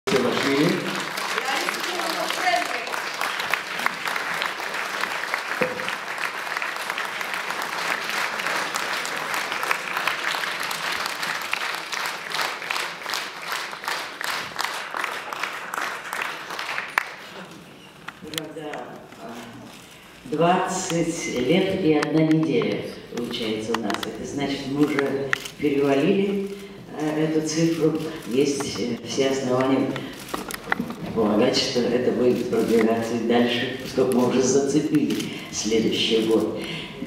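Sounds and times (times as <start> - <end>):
audience applauding: 0.1 - 17.9.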